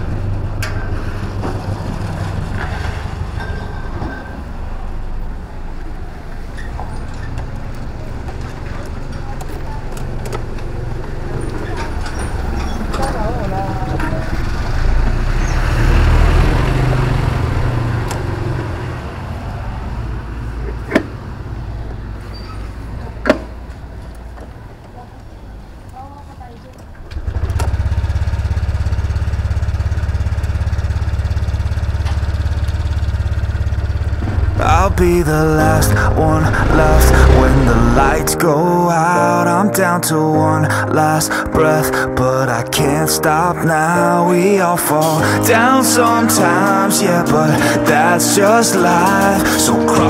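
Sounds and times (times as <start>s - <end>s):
scooter engine idling: 27.1s - 38.3s
music: 34.5s - 50.0s.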